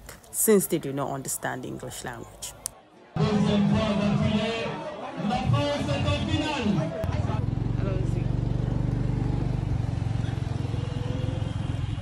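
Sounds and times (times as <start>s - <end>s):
vehicle engine running: 5.9s - 12.0s.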